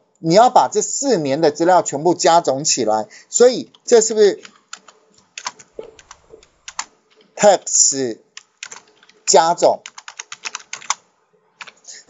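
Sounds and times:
keyboard typing: 0:03.6 - 0:12.0.

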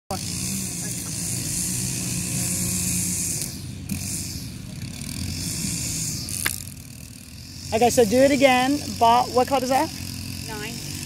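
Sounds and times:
distant motor drone: 0:00.1 - 0:11.0.

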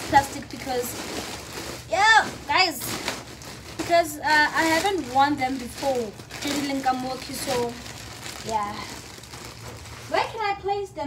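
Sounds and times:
plastic bag rustling and crinkling: 0:00.0 - 0:10.7.

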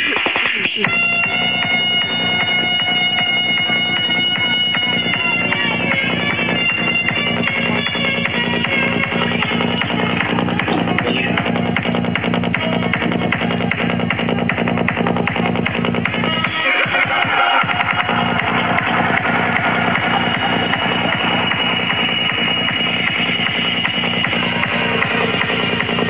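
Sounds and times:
psytrance dance music: 0:00.0 - 0:26.0
rising sweep: 0:17.0 - 0:26.0.

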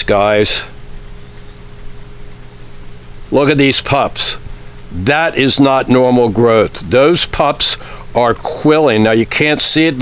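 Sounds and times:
even hiss: 0:00.0 - 0:10.0
steady low hum: 0:00.0 - 0:10.0.

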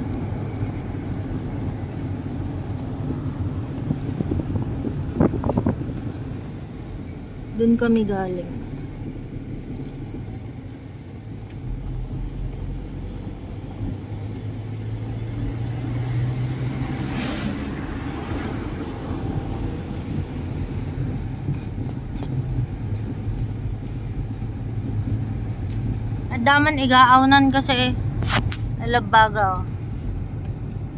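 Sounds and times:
car engine and road rumble: 0:00.0 - 0:30.9
loud rushing sound: 0:15.9 - 0:21.4.

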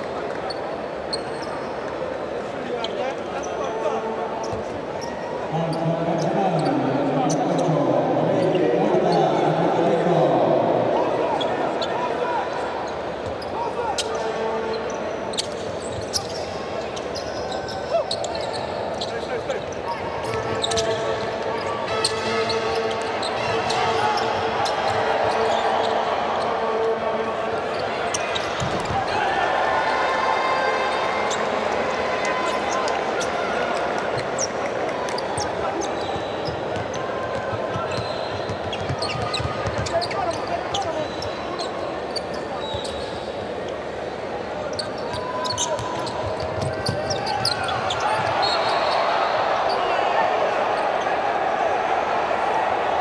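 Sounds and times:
voices calling in arena: 0:00.0 - 0:53.0.

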